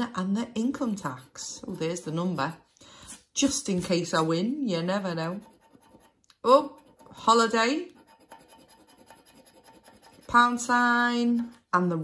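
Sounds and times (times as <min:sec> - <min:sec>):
scratcher scraping scratch card: 0:05.0 - 0:10.8.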